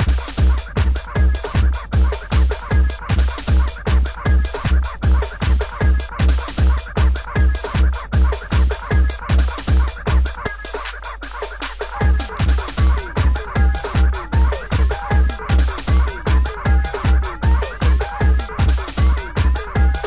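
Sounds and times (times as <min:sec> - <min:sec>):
fast kick drum: 0:00.0 - 0:20.0
high percussion: 0:00.0 - 0:20.0.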